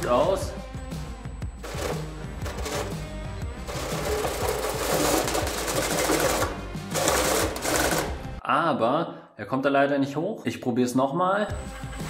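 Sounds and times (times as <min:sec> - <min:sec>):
background music: 0:00.0 - 0:09.1, 0:11.4 - 0:12.0.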